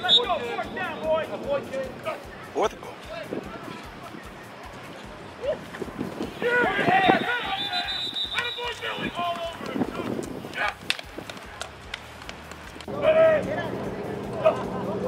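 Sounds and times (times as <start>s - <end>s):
voices shouting and cheering: 0.0s - 15.0s.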